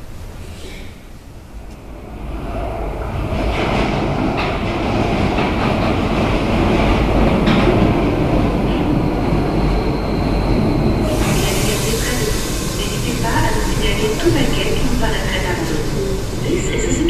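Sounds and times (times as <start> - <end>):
train wheels rumbling on rail: 0.7 - 17.0
clacks over rail joints: 3.5 - 8.0.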